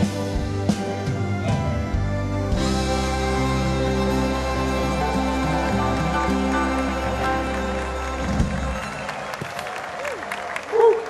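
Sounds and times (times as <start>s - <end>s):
soft instrumental music: 0.0s - 9.2s
audience applauding: 3.2s - 11.0s.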